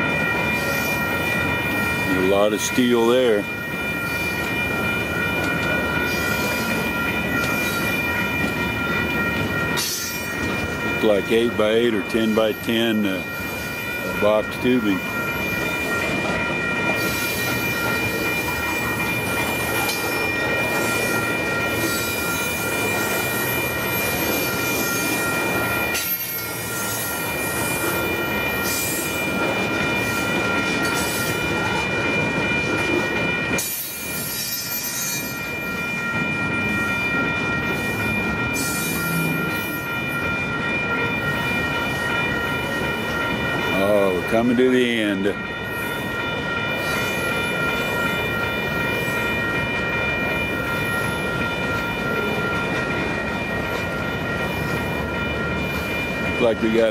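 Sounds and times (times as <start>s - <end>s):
train wheels rumbling on rail: 0.0s - 56.9s.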